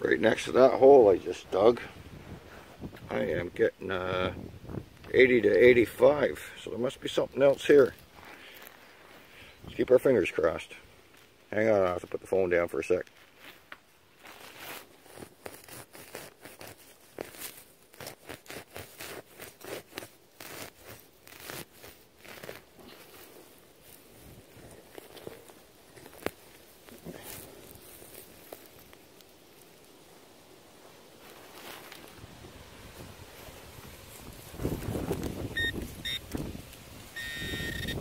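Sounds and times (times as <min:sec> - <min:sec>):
grass rustling: 0:00.0 - 0:38.0
digger crunching turf and soil: 0:11.1 - 0:29.9, 0:30.7 - 0:38.0.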